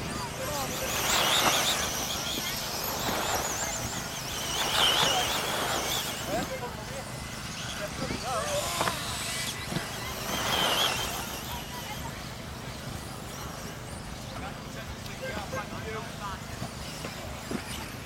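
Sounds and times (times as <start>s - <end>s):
rc car motors whining: 0.0s - 18.0s.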